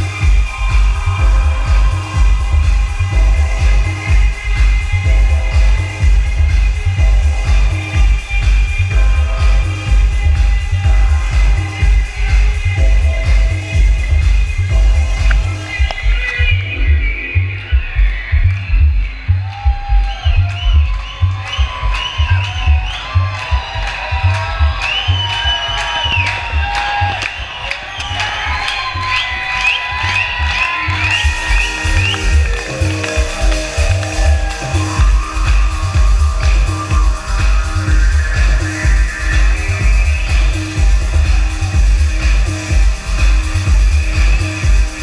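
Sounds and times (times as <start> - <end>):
electronic dance music: 0.0 - 45.0.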